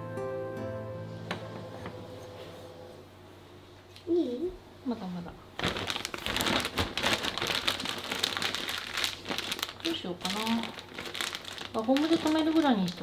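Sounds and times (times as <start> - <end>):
plastic bag crinkling: 5.6 - 13.0.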